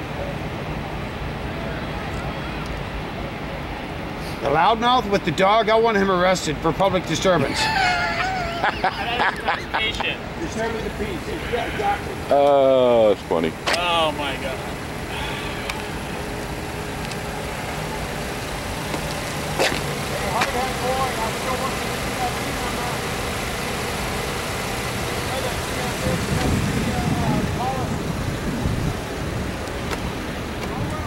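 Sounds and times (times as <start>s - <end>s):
faint voices: 0.0s - 4.6s, 5.6s - 31.0s
road traffic rumble: 0.0s - 31.0s.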